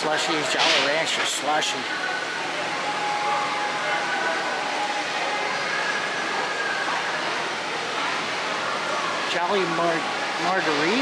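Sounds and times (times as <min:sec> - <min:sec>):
hum and hiss of hall: 0:00.0 - 0:11.0.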